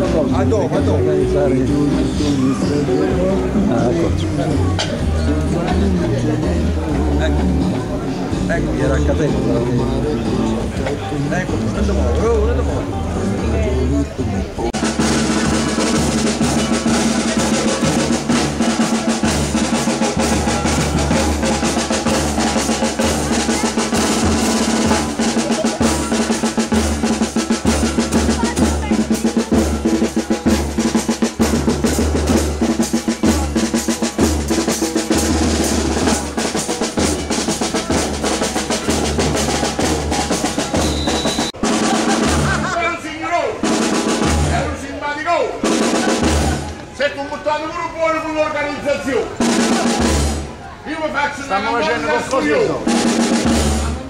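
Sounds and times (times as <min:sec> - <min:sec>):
voices calling out: 0:00.0 - 0:54.0
bass drum thumping: 0:14.7 - 0:42.8
snare drum rolls: 0:14.8 - 0:44.8, 0:45.6 - 0:46.9, 0:49.0 - 0:50.6, 0:52.1 - 0:54.0.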